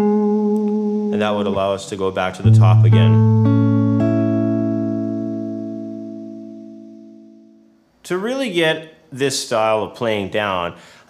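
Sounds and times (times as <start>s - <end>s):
fingerstyle electric guitar: 0.0s - 1.1s, 2.4s - 7.7s.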